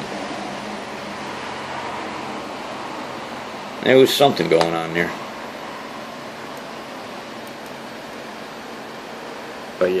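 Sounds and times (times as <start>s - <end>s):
steady room noise hiss: 0.0s - 10.0s.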